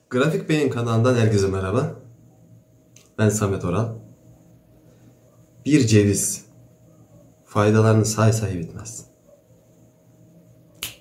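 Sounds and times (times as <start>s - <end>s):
finger snap: 10.7s - 11.0s.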